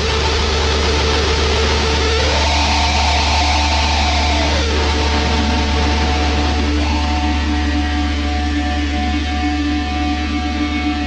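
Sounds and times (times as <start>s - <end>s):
distorted electric guitar drone: 0.0s - 11.0s.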